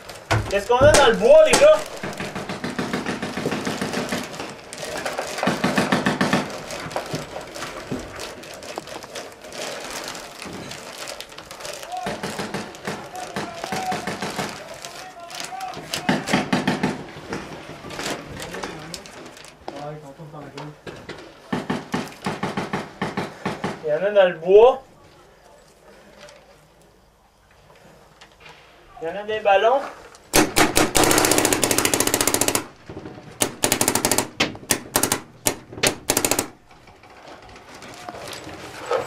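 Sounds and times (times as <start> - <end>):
paintball markers firing: 0.5 - 4.6, 30.3 - 32.8, 33.4 - 36.6
people shouting: 11.8 - 16.5.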